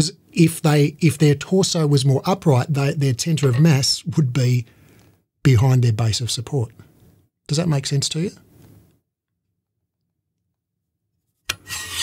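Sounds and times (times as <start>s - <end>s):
metal bars rubbing and scraping: 11.5s - 12.0s.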